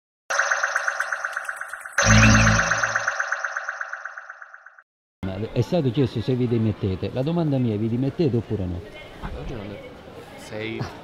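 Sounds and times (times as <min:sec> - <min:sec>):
electronic jingle pulsing pattern: 0:00.3 - 0:04.8.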